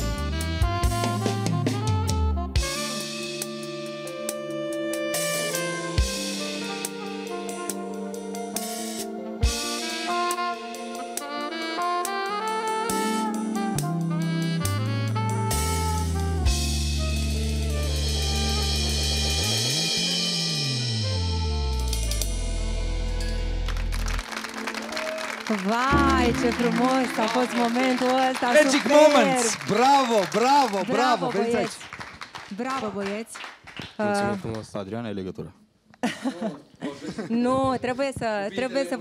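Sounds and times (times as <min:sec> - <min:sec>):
saxophone duet: 0:00.0 - 0:23.2, 0:24.9 - 0:30.0, 0:30.9 - 0:31.7
band with drums and bass: 0:00.0 - 0:25.2, 0:25.8 - 0:31.3.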